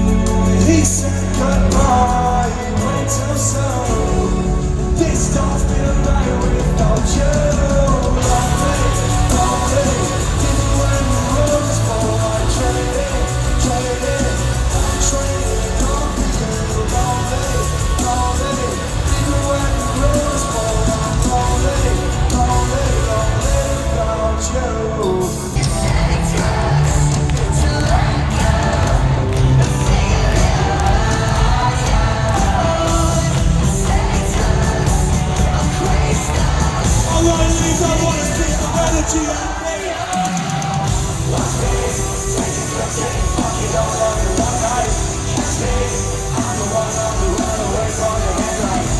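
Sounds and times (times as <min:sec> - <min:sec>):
crowd yelling and cheering: 0:00.0 - 0:48.9
live rock music over loudspeakers: 0:00.0 - 0:48.9
person singing: 0:00.0 - 0:48.9.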